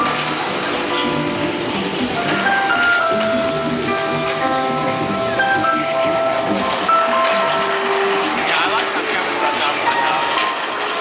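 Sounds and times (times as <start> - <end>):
soundtrack music with held notes: 0.0 - 11.0
water fountains spraying: 0.0 - 11.0.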